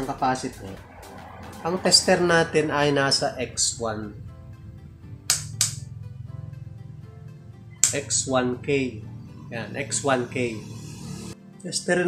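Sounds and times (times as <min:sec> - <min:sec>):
background music: 0:00.0 - 0:12.0
rotary switch clicks: 0:05.3 - 0:05.8.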